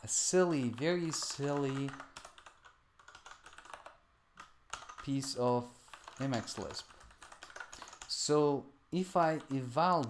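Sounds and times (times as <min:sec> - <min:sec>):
computer keyboard typing: 0:00.3 - 0:08.3, 0:09.3 - 0:09.7.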